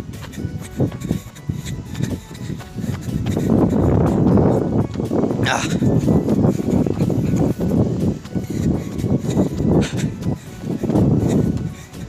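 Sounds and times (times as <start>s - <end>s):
low thuds of jogging: 0.0s - 12.0s
wind rumble on microphone: 0.0s - 12.0s.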